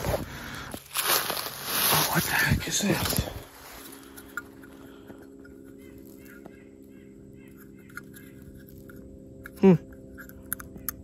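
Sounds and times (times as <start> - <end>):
steady low hum: 0.0 - 11.0
faint bird chirps: 4.8 - 8.7.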